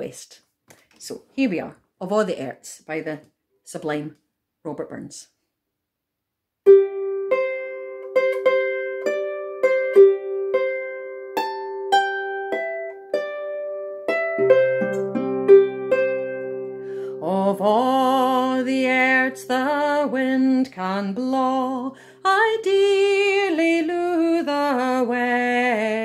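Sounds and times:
harp plucked melody: 6.7s - 20.1s
woman singing with vibrato: 17.1s - 26.0s.

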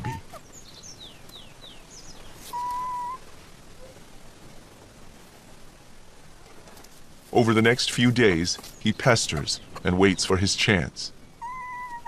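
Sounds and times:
birds chirping: 0.0s - 4.5s, 7.4s - 12.0s.

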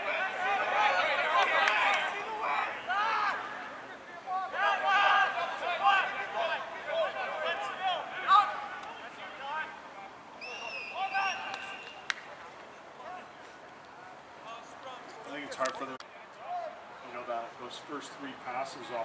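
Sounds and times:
players shouting short calls: 0.0s - 13.5s.

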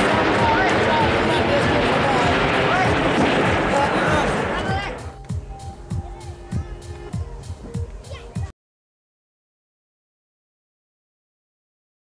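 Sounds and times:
music: 0.0s - 8.6s
several voices: 0.2s - 8.5s.

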